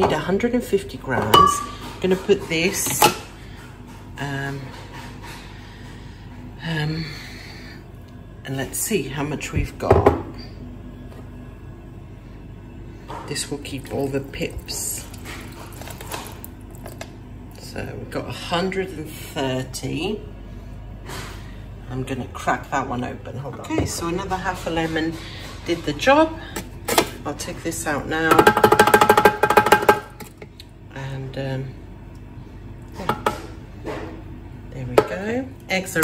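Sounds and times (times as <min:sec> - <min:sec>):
low machine hum: 0:00.0 - 0:36.0
metal bowl ringing: 0:01.1 - 0:01.8.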